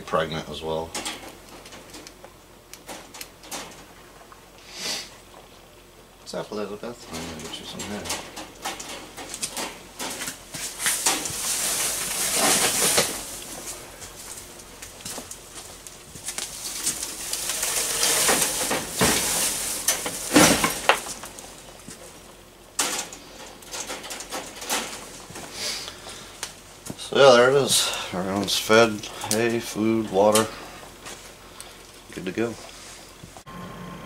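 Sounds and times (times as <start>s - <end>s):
wire cage rattling: 7.2s - 22.2s, 22.8s - 25.4s
hay rustling: 9.3s - 22.4s.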